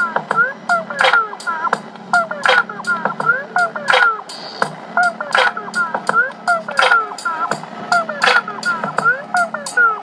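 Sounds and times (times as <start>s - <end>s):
steady beat: 0.0s - 10.0s.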